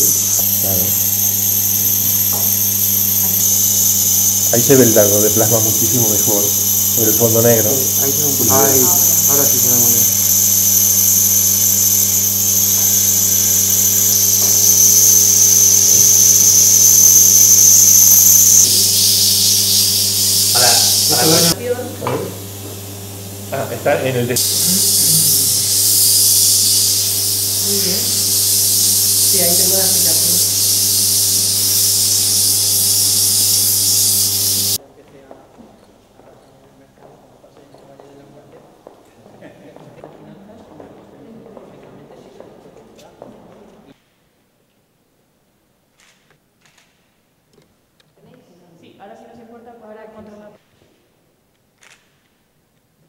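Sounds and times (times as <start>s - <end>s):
high-pitched whine: 0.0s - 21.7s, 23.6s - 34.8s
plasma pen electrical buzz: 0.0s - 34.8s.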